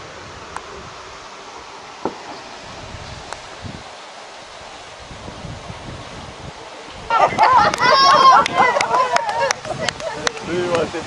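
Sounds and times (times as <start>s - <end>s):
wind buffeting microphone: 2.0s - 11.0s.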